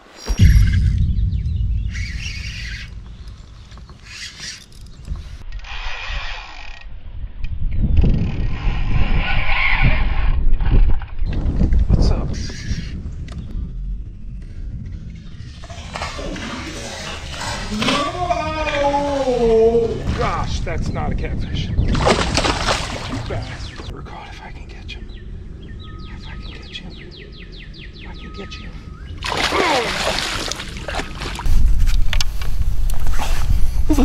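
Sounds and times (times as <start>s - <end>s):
low rumble: 0.2s - 5.5s, 13.1s - 27.9s
man's wavering exclamation: 17.8s - 20.0s.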